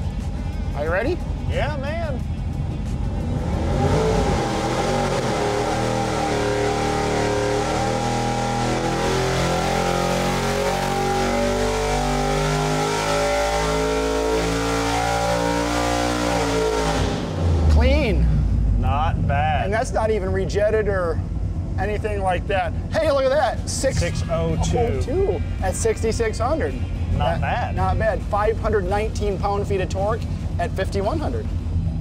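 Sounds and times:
vee eight engine at full throttle: 0.0 - 32.0.

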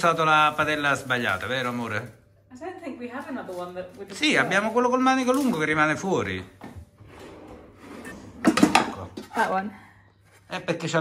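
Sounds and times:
pans clattering together: 8.4 - 9.4.

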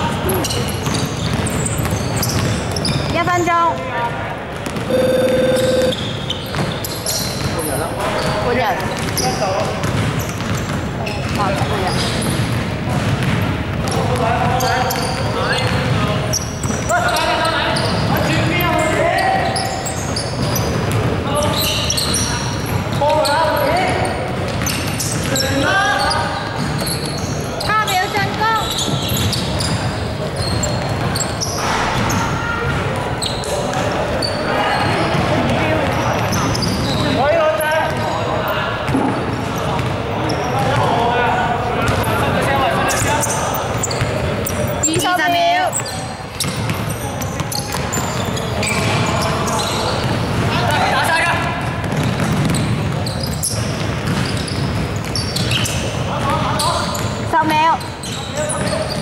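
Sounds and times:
players' voices: 0.0 - 59.0
basketball bouncing on wooden floor: 0.4 - 3.8, 8.5 - 16.0, 20.4 - 21.2, 51.6 - 55.5.

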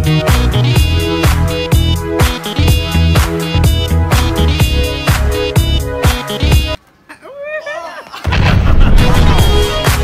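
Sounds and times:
music: 0.0 - 6.8, 8.3 - 10.0
explosion sound effect: 8.3 - 10.0.

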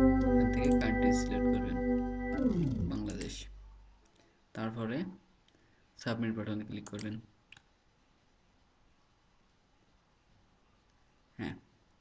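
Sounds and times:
computer mouse click: 3.1 - 3.3.

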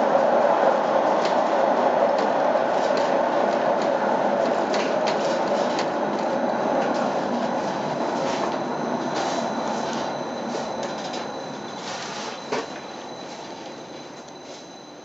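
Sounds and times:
cable car rumbling along track: 0.0 - 10.5
faint high whine: 2.9 - 15.0.

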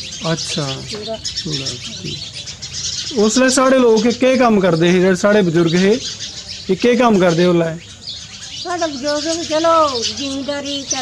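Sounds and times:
small birds chirping: 0.0 - 11.0.

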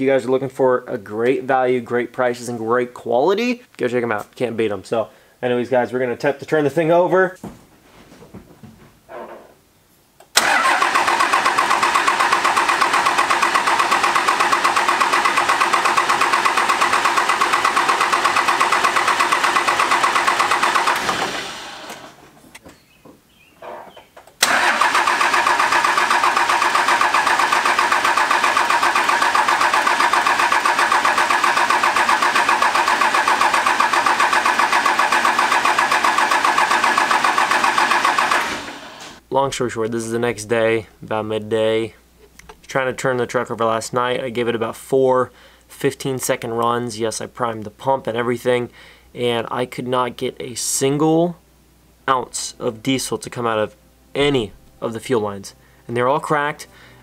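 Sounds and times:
diesel engine cranking: 10.4 - 22.3, 24.4 - 39.2.

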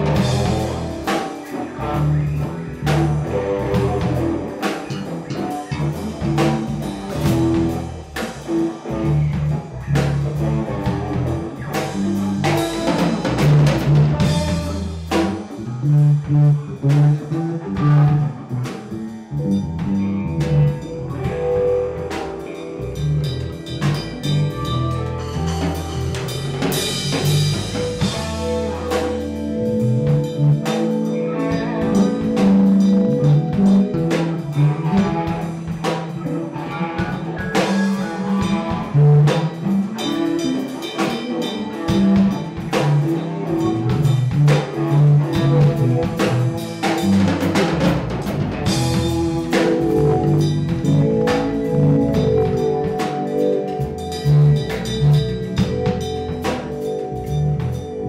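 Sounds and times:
bass guitar: 0.0 - 58.0
drum kit steady beat: 0.0 - 58.0
electric guitar: 0.0 - 58.0
keyboards: 0.0 - 58.0.

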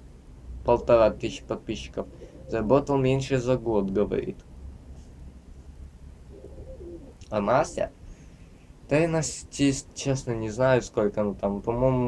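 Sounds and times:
pigeon cooing: 2.0 - 2.9, 6.3 - 7.9.

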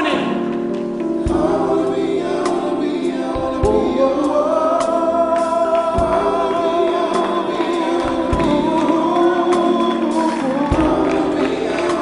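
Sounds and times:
band accompaniment: 0.0 - 12.0
voices singing in close harmony: 1.2 - 12.0.

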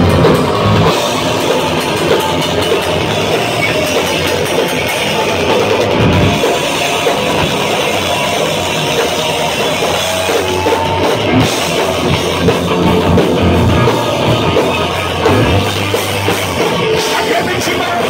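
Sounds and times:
distorted electric guitars: 0.0 - 18.0
pounding drum kit: 0.0 - 18.0.

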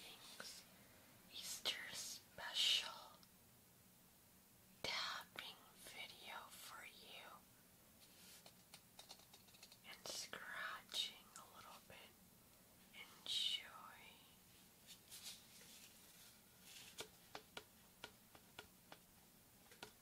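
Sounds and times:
woman whispering softly: 0.0 - 0.7, 1.3 - 3.2, 4.8 - 7.4, 9.8 - 12.2, 12.9 - 14.4.

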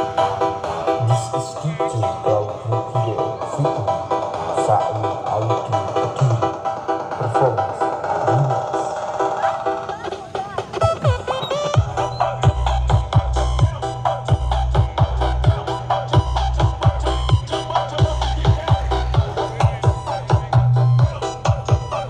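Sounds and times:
pounding sub-bass beat: 0.0 - 9.4, 10.5 - 22.0
loud electronic dance music: 0.0 - 22.0.

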